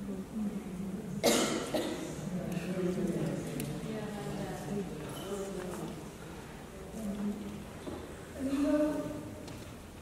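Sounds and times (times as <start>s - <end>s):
person coughing: 1.2s - 2.2s.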